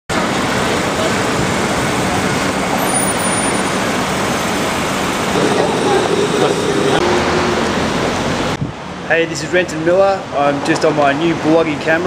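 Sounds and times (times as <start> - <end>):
passing vehicles rushing: 1.5 - 9.3.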